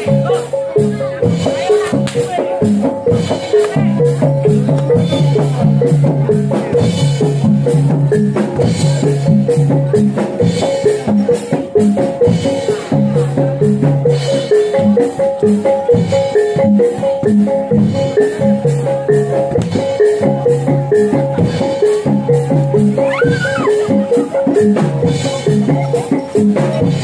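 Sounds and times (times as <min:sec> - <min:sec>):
drums playing: 0:00.0 - 0:27.0
fast repeating melody: 0:22.8 - 0:26.0.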